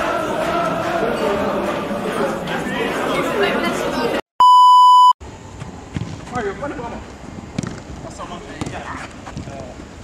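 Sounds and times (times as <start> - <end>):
voices chattering: 1.1 - 4.2
high test-tone beep: 4.4 - 5.2.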